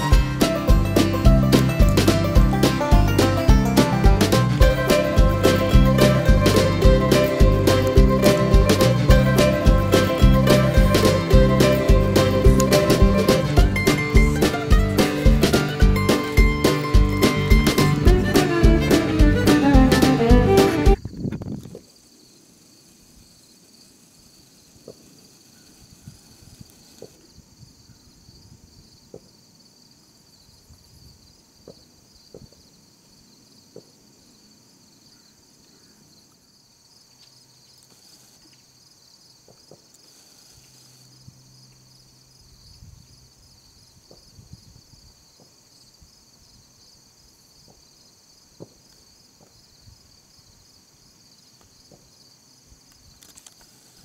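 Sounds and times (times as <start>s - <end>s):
insect chorus chirring: 21.0s - 54.0s.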